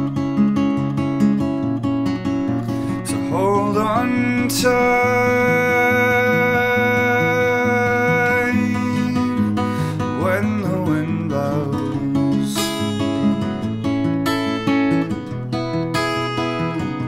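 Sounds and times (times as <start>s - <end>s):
acoustic guitar strumming chords: 0.0s - 17.0s.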